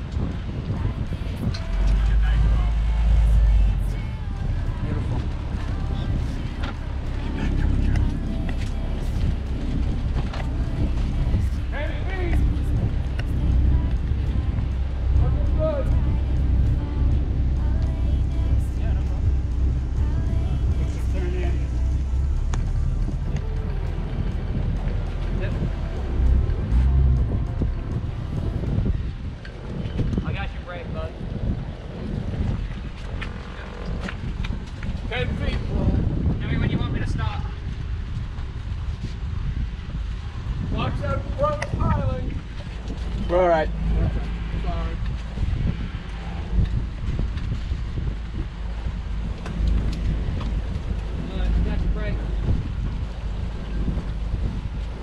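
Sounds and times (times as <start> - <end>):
boat engine running low: 0.0 - 55.0
wind buffeting microphone: 0.0 - 55.0.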